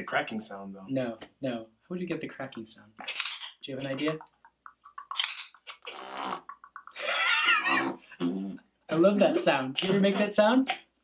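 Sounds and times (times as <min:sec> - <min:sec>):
beatboxing clicks and pops: 0:03.8 - 0:07.0
buzzing lip raspberry: 0:05.8 - 0:08.6.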